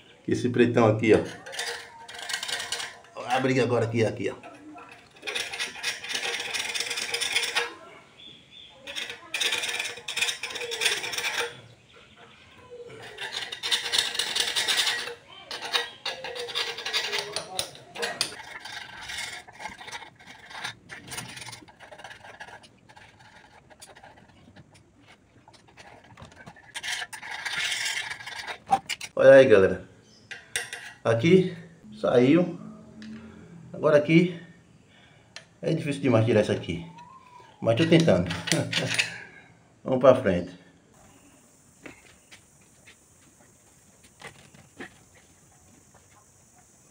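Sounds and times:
metal tool scraping plastic: 1.1s - 7.9s, 8.8s - 11.7s, 12.9s - 29.2s.

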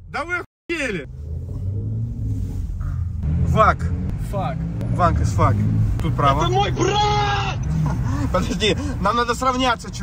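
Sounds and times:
car engine drone from inside cabin: 0.8s - 9.7s.

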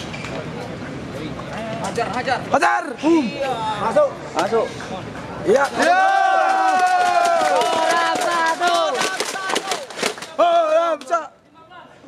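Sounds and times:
spectators cheering: 5.5s - 11.0s
hand clapping: 6.5s - 10.4s.

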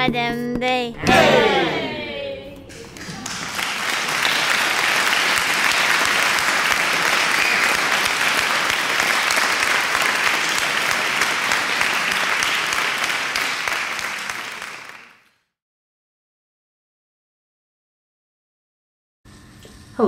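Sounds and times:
audience applause: 1.1s - 2.1s, 2.7s - 15.2s.

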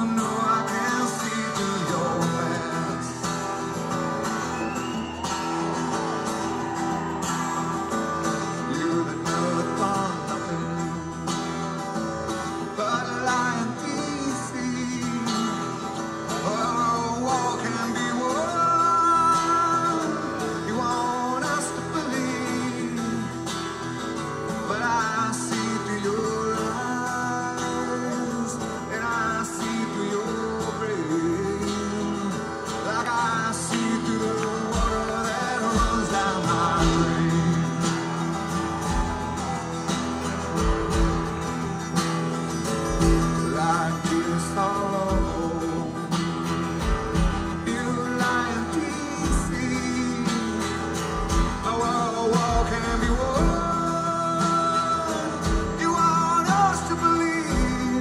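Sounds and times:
man singing: 0.0s - 58.0s
strummed acoustic guitar: 0.0s - 58.0s.

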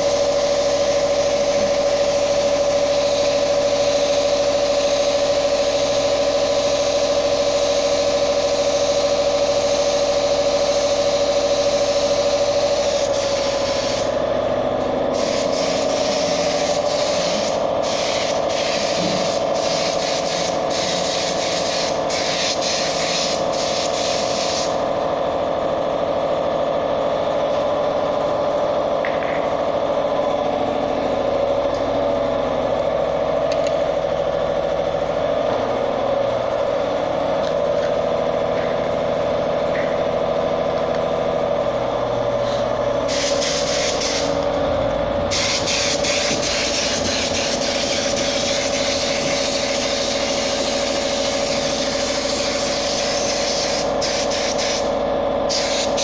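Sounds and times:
spray gun hissing: 0.0s - 14.2s, 15.1s - 24.8s, 42.4s - 44.4s, 45.3s - 56.0s
steady motor hum: 0.0s - 56.0s.

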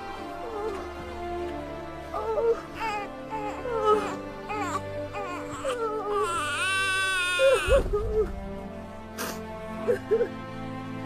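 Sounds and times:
background music with held notes: 0.0s - 11.0s
baby crying: 2.1s - 8.3s.

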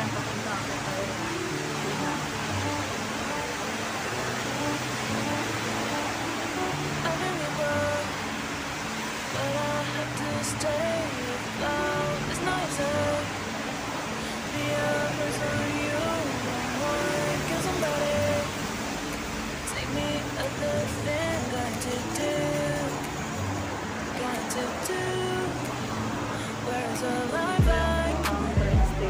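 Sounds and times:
heavy rain hissing: 0.0s - 29.0s
background music with bass line: 27.6s - 29.0s.

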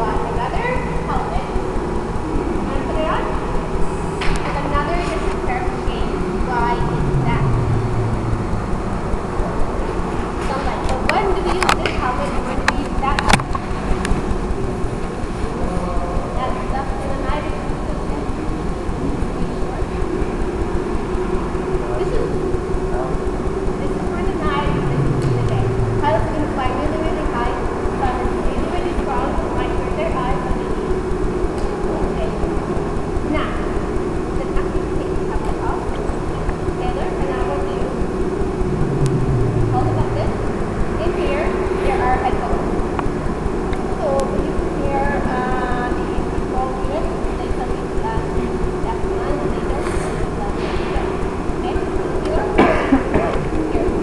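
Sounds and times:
people talking indistinctly: 0.0s - 54.0s
steady low hum: 0.0s - 54.0s.

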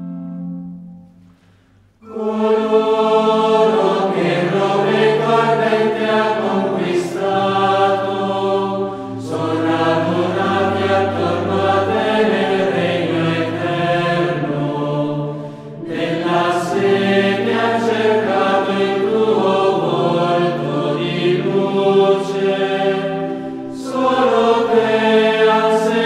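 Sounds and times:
choir singing held chords: 0.0s - 26.0s.

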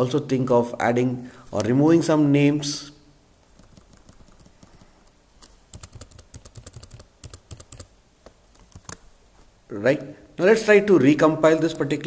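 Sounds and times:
computer keyboard tapping: 3.5s - 7.9s, 8.5s - 9.0s.

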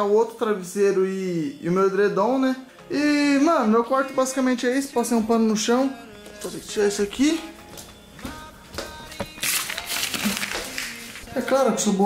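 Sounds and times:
loud rustling handling noise: 9.3s - 11.2s.

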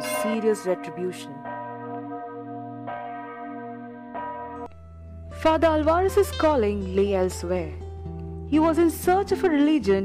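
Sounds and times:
church bell ringing: 0.0s - 8.0s.

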